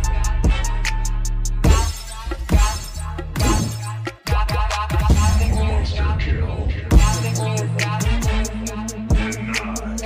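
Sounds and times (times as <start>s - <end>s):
music with heavy bass beat: 0.0s - 6.2s, 6.9s - 10.0s.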